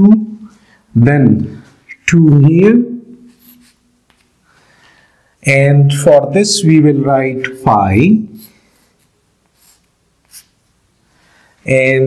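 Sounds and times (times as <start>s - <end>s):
chalk scratching on blackboard: 3.3s - 3.8s, 8.4s - 10.6s.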